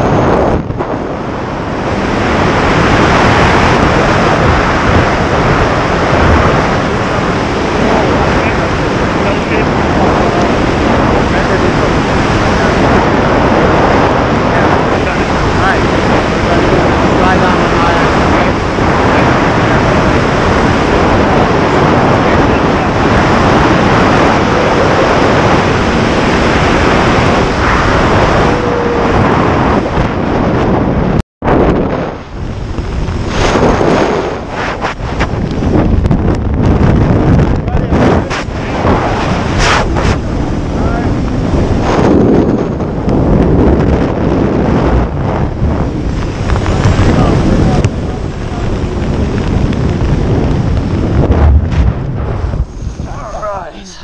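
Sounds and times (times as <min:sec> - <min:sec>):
heavy wind on microphone: 0:00.0 - 0:54.0.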